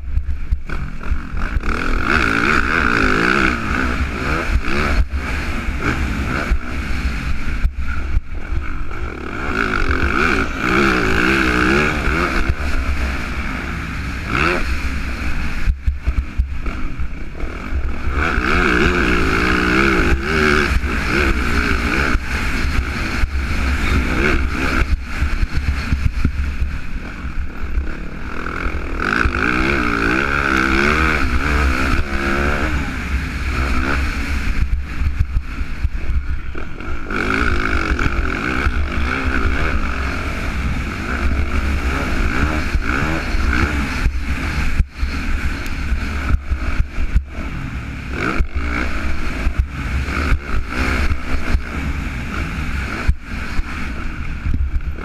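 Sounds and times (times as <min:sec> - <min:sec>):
motocross bike engine revving: 0:00.0 - 0:55.0.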